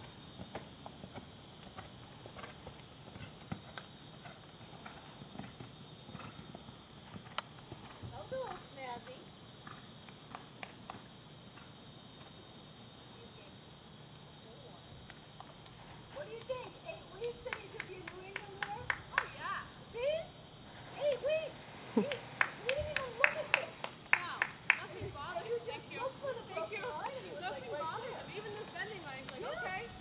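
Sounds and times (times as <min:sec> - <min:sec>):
soft hoofbeats on sand: 0:20.6 - 0:24.0.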